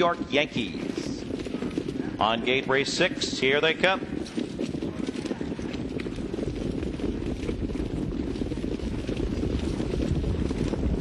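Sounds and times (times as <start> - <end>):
hoofbeats on dirt track: 0.0 - 11.0.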